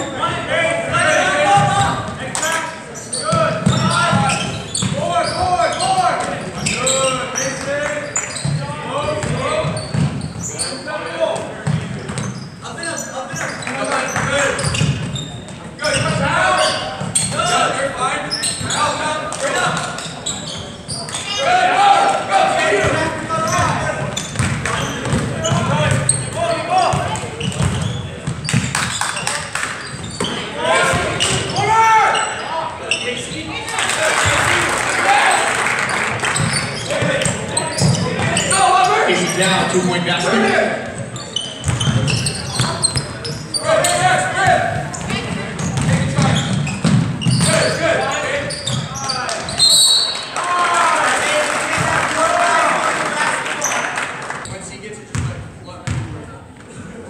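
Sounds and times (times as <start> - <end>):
people shouting and talking: 0.0 - 57.0
basketball bouncing on court: 3.3 - 5.4, 8.4 - 10.5, 11.6 - 12.4, 22.8 - 29.2, 41.6 - 43.2, 43.9 - 47.7, 55.1 - 56.2.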